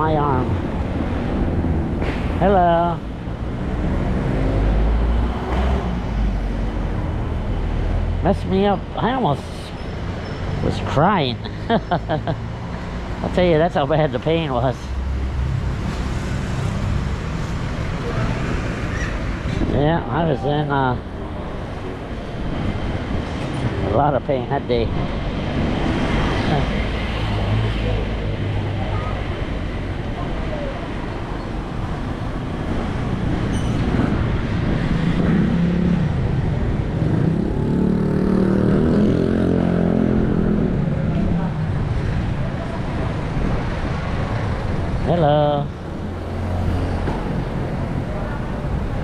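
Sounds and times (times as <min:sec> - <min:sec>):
street traffic: 0:00.0 - 0:49.0
vehicles passing: 0:00.0 - 0:49.0.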